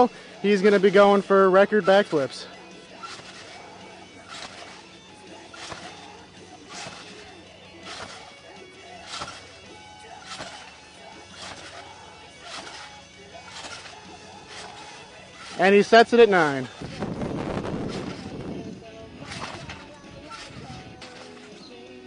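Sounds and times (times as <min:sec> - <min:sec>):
trampoline landing thumps: 0:01.1 - 0:21.6.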